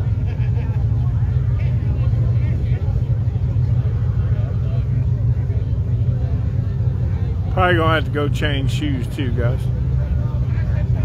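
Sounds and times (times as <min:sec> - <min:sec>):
car engines idling: 0:00.0 - 0:11.0.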